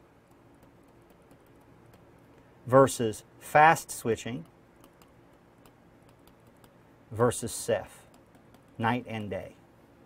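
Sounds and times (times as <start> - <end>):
pen writing ticks: 0.2 - 2.1, 4.4 - 6.8, 8.0 - 8.8.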